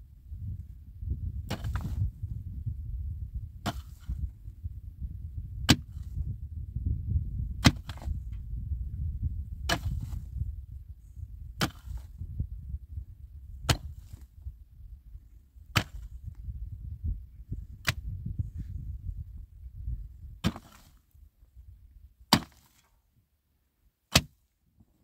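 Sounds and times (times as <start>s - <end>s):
steady low rumble: 0.0s - 22.3s
pick striking hard earth: 0.5s - 2.7s, 3.3s - 4.8s, 5.4s - 8.6s, 9.3s - 10.5s, 11.4s - 12.5s, 13.4s - 14.4s, 15.6s - 16.5s, 17.5s - 21.2s, 22.2s - 23.0s, 24.1s - 24.5s.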